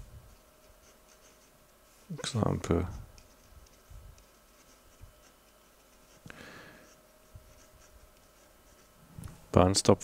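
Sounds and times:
marker pen scratching: 0.3s - 9.0s.

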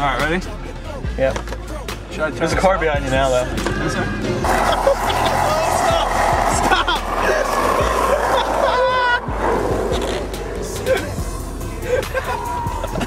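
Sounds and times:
music with singing voice: 0.0s - 13.0s.

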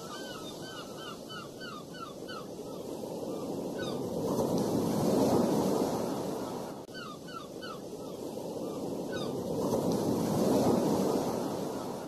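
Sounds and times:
bird calling: 0.0s - 2.8s.

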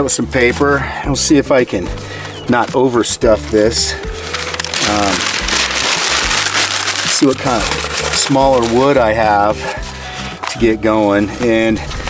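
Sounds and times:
paper crumpling and rustling: 2.0s - 12.0s.

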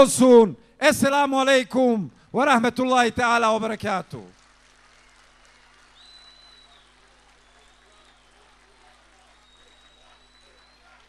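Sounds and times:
high-pitched whistle: 6.0s - 6.9s.

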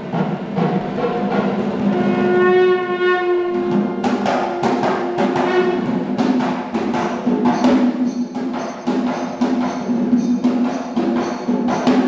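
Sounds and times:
fast drum strokes: 0.0s - 2.7s, 3.3s - 12.0s
long wind instrument note: 1.9s - 6.0s.

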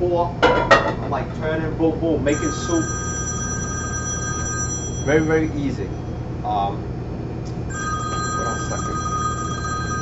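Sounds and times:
smartphone ringing: 2.3s - 6.4s, 7.7s - 10.0s.

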